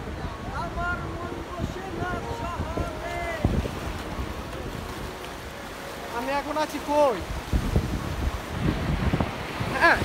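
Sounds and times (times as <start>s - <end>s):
voices: 0.0s - 7.2s
surf rushing: 0.0s - 10.0s
wind buffeting microphone: 0.0s - 10.0s.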